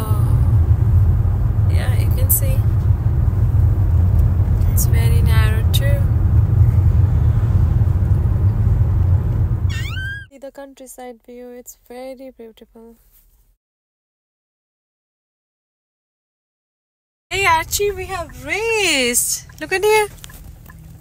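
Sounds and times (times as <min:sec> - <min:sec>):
car road and engine rumble: 0:00.0 - 0:13.5, 0:17.3 - 0:21.0.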